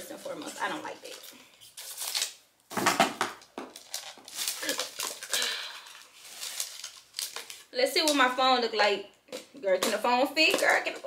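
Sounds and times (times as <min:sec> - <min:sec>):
plastic bag knocks and rustles: 0:02.7 - 0:03.9.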